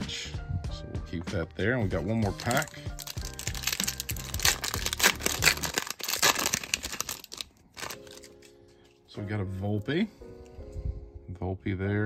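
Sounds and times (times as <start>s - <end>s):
foil wrapper tearing and crinkling: 2.2s - 8.6s.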